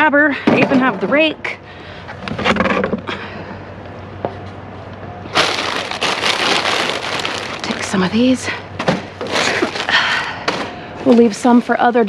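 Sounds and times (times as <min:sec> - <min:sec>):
plastic bags crinkling: 0:05.3 - 0:08.5, 0:09.2 - 0:10.3.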